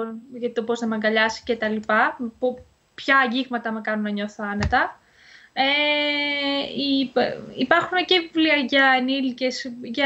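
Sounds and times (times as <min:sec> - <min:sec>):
short breath: 0:05.0 - 0:05.6.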